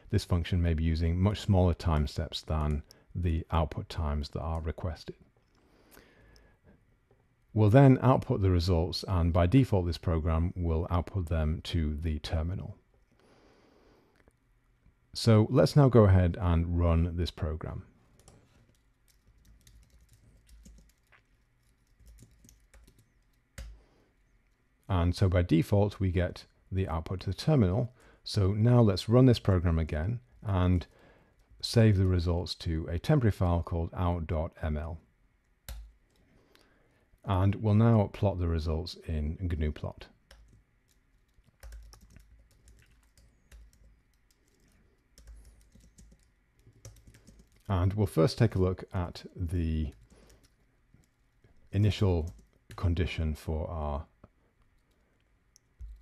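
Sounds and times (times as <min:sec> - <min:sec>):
typing on computer keyboard: 0:18.2 - 0:23.8, 0:35.7 - 0:36.2, 0:40.3 - 0:47.7.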